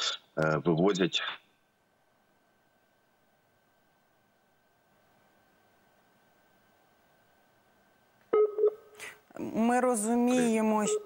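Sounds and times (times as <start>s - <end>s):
faint steady high tone: 9.8s - 11.0s.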